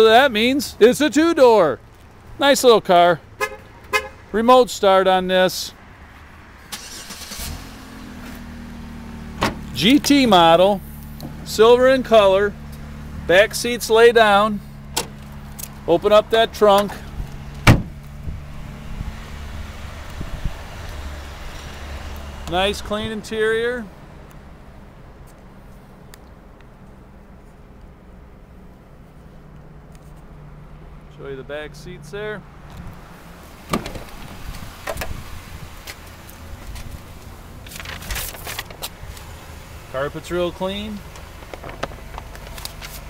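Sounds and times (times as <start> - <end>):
car trunk lid slamming shut: 9.4 - 9.7, 17.6 - 18.0, 33.6 - 34.2.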